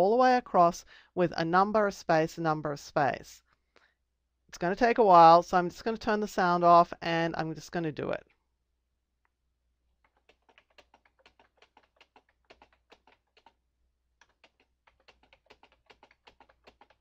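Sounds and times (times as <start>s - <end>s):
faint keyboard typing: 10.0s - 17.0s.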